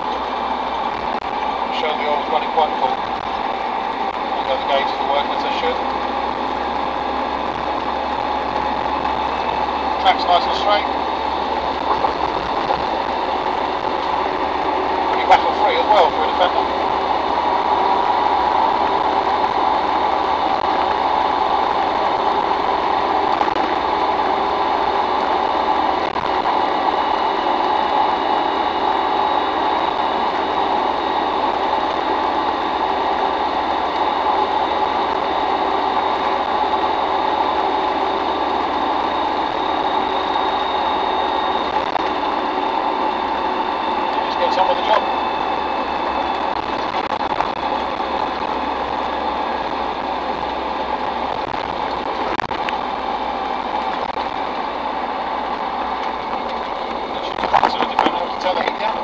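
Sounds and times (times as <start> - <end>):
diesel engine running: 0.0 - 59.0
road and wind noise: 0.0 - 59.0.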